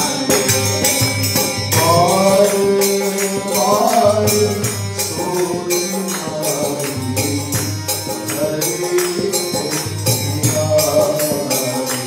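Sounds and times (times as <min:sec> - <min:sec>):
harmonium: 0:00.0 - 0:12.0
jingling hand percussion: 0:00.0 - 0:12.0
man singing devotional chant: 0:00.0 - 0:12.0.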